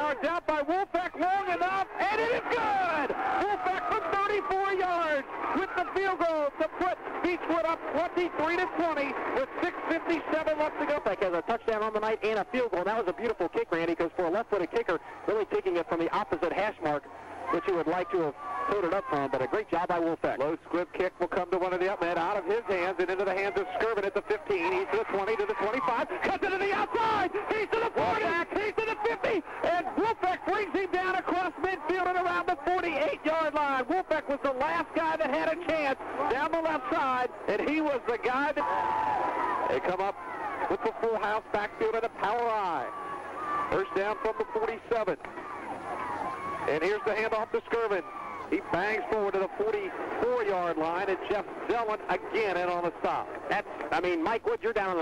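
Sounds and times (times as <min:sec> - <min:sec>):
voices talking: 0:00.0 - 0:55.0.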